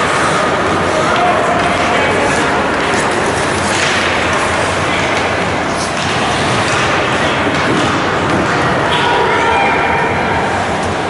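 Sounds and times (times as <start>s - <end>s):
ice hockey arena rumble: 0.0s - 11.0s.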